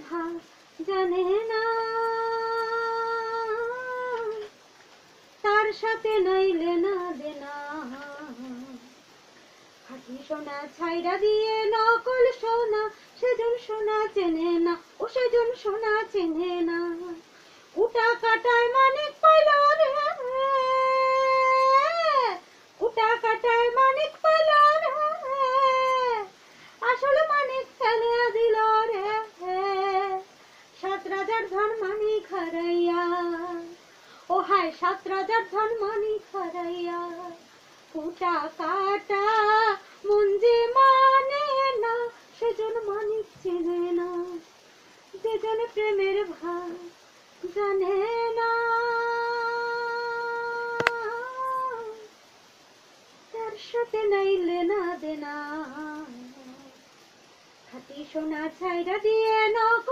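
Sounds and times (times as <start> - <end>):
woman singing unaccompanied: 0.0 - 9.1, 9.7 - 52.6, 53.2 - 59.9
woman breathing: 17.3 - 17.8, 26.4 - 26.8
sharp click: 50.8 - 51.0.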